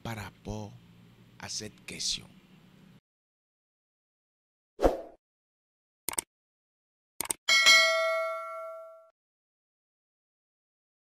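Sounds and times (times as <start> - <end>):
quick double click: 6.1 - 6.3, 7.2 - 7.4
bright notification bell ding: 7.5 - 9.1.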